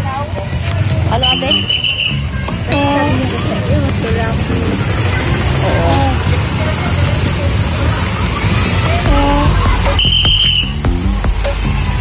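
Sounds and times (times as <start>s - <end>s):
passing vehicle engines: 0.0s - 10.7s
scattered voices: 0.0s - 10.8s
short high-pitched horn blast: 9.1s - 10.5s.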